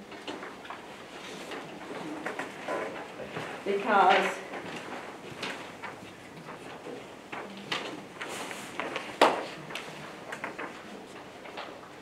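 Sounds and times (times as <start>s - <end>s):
paper rustling: 0.2s - 12.0s.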